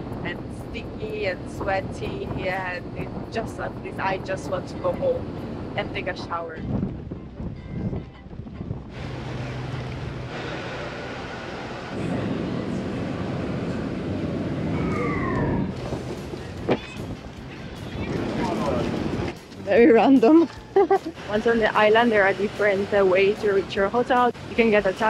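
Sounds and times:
wind on microphone: 0:00.0 - 0:21.9
low engine hum: 0:00.0 - 0:25.0.

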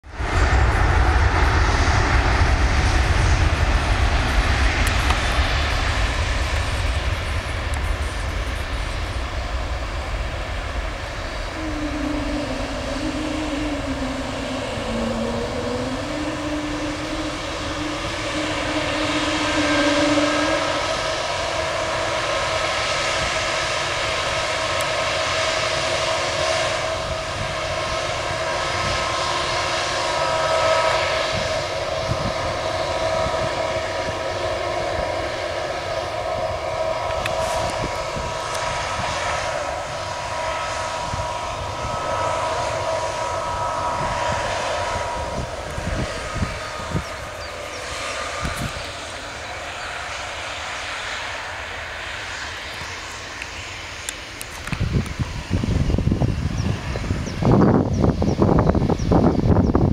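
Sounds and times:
jet engines whining at taxi: 0:00.0 - 0:59.9.

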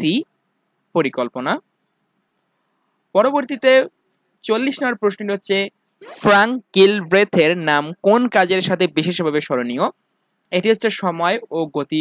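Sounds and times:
person speaking: 0:00.0 - 0:00.2, 0:03.2 - 0:09.9, 0:10.5 - 0:12.0.

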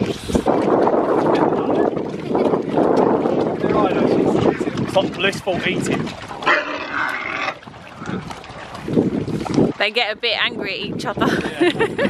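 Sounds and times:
pigs grunting: 0:06.4 - 0:07.6.

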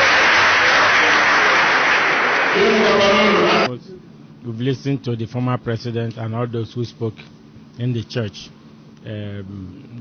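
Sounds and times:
crowd applauding: 0:00.0 - 0:03.7.

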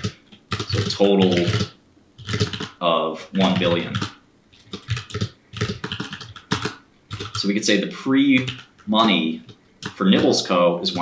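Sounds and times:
computer keyboard typing: 0:00.0 - 0:02.8, 0:03.4 - 0:11.0.

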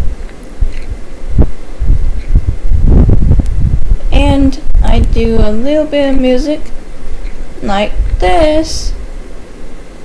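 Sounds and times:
microphone handling thumps: 0:00.0 - 0:05.1.

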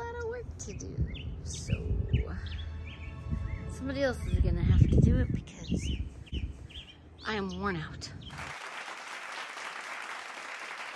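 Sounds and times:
crowd clapping: 0:08.3 - 0:10.9.

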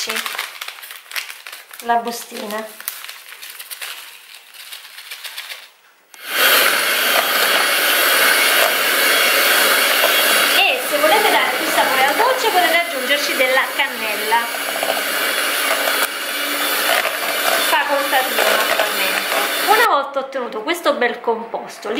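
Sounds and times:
paper sachet rustling: 0:00.0 - 0:05.8
electric hand mixer whisking: 0:06.2 - 0:19.9.

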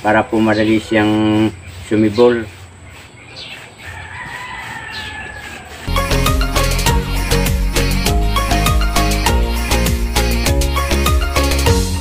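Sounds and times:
rooster crowing: 0:03.8 - 0:05.9
music: 0:05.9 - 0:12.0.

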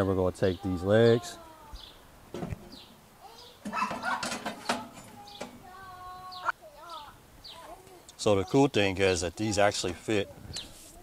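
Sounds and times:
birds chirping: 0:00.0 - 0:10.8
metal brackets clanking: 0:03.6 - 0:05.7.

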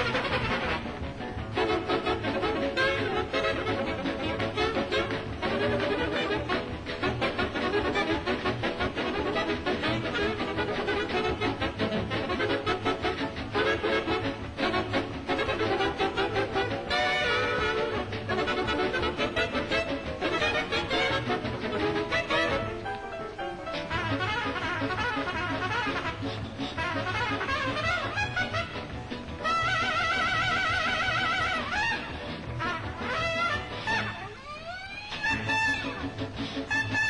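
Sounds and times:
big band playing hot jazz: 0:00.0 - 0:37.0.

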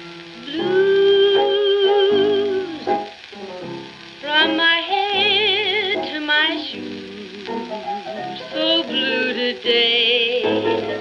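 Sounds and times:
blues song with vocal and piano: 0:00.0 - 0:11.0
record surface crackle: 0:00.0 - 0:11.0.

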